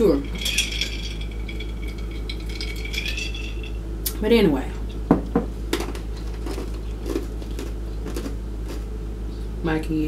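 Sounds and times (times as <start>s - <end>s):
ice cubes clinking against glass: 0.0s - 3.8s
steady low hum: 0.0s - 10.0s.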